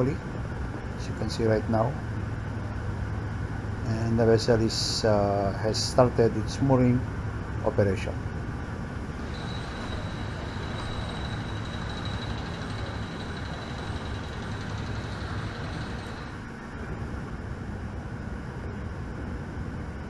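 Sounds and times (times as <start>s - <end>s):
low machinery rumble with hiss: 0.0s - 20.0s.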